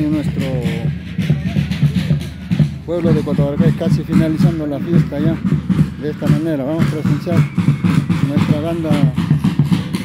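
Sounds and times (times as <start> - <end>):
band music: 0.0 - 10.0
steady drum beat: 0.0 - 10.0.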